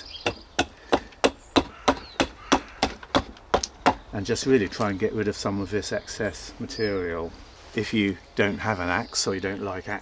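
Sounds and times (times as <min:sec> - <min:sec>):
hatchet chopping wood: 0:00.0 - 0:04.0.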